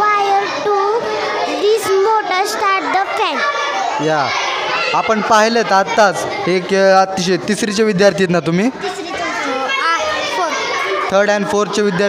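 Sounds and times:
children talking: 0.0s - 12.0s.

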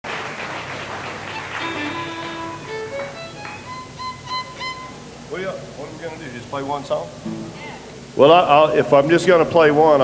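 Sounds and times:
fiddle long notes: 1.0s - 5.2s.

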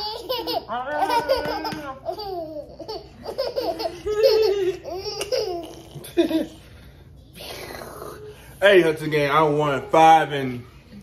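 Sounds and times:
baby laughing: 0.0s - 6.6s.

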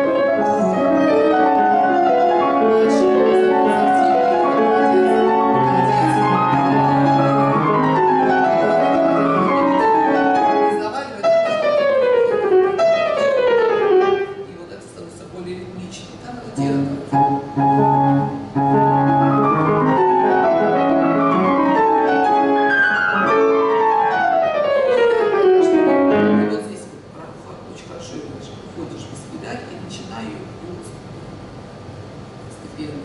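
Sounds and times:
fast piano playing: 0.0s - 14.8s, 16.5s - 27.0s.

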